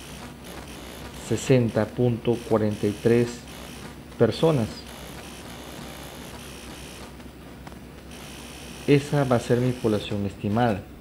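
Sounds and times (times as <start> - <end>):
background hiss and hum: 0.0 - 11.0.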